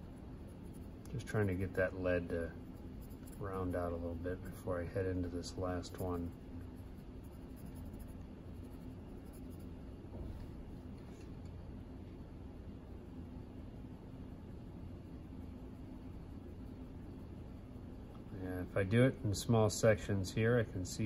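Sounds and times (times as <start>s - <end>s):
pencil scratching on paper: 0.4s - 1.8s, 2.8s - 4.0s, 5.8s - 9.7s.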